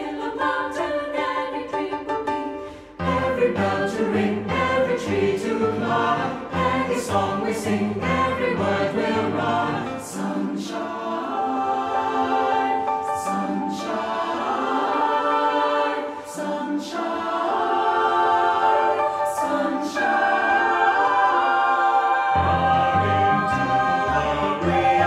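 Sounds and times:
choir singing sustained chords: 0:00.0 - 0:25.0.

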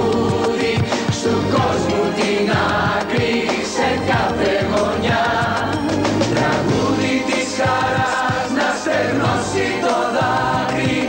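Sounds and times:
group of singers singing: 0:00.0 - 0:11.0
pop backing music: 0:00.0 - 0:11.0.

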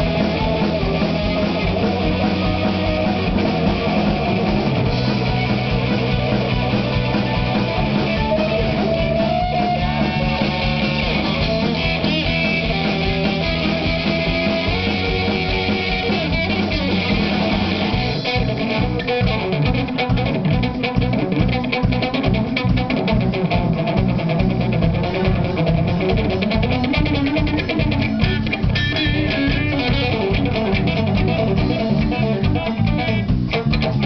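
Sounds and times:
bass: 0:00.0 - 0:34.0
guitar: 0:00.0 - 0:34.0
live band playing: 0:00.0 - 0:34.0.

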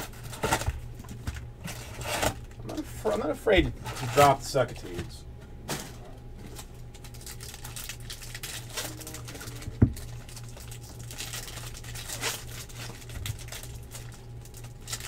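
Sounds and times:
card packs clicking and crinkling: 0:00.0 - 0:15.0.

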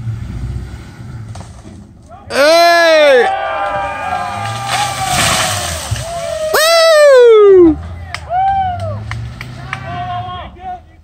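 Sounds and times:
truck engine under load: 0:00.0 - 0:02.4, 0:03.4 - 0:10.8.

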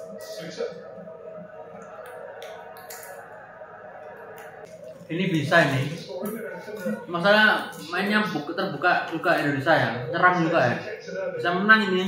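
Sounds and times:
televised football match: 0:00.0 - 0:12.0.

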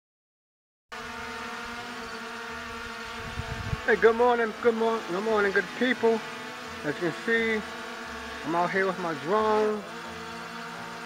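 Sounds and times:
drone propellers buzzing: 0:00.9 - 0:11.0.

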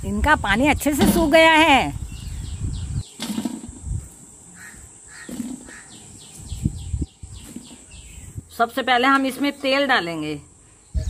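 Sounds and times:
birds chirping: 0:00.5 - 0:11.0
rough bird calls: 0:02.1 - 0:08.4.

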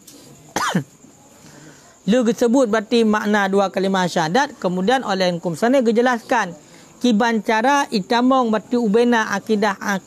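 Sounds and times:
man clearing throat: 0:00.5 - 0:01.0.

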